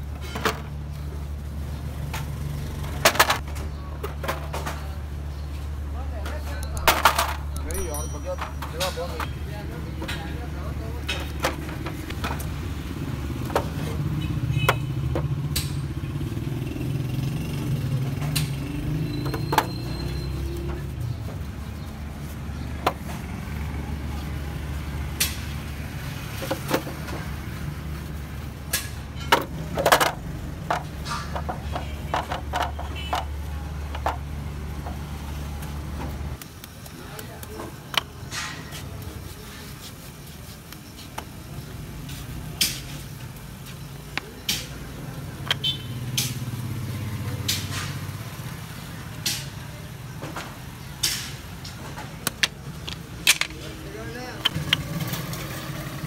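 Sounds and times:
sharp clicks and knocks: 50.2s - 53.7s.

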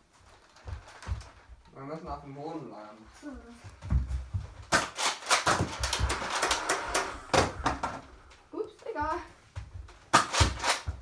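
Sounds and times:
thud: 3.8s - 8.4s.

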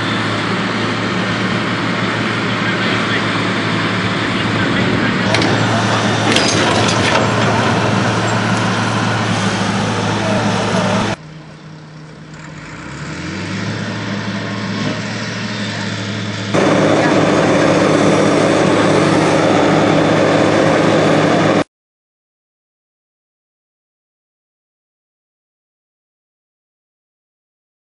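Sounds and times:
diesel engines running: 0.0s - 21.7s
engine speeding up: 0.0s - 21.7s.

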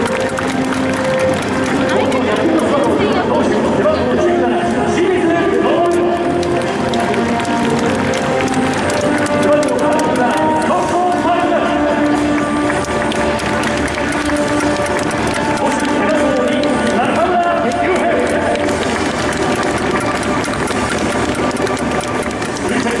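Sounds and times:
crowd noise: 0.0s - 23.0s
music over loudspeakers: 0.0s - 23.0s
announcer over public address: 0.5s - 20.4s.

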